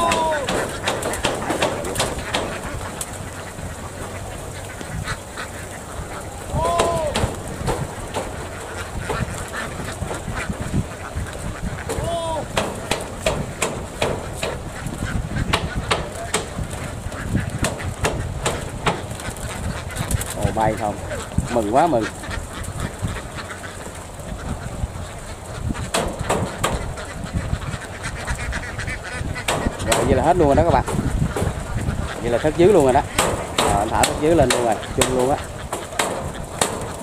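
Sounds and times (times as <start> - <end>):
drawn-out duck calls: 0.0 - 37.0
ducks quacking: 0.0 - 37.0.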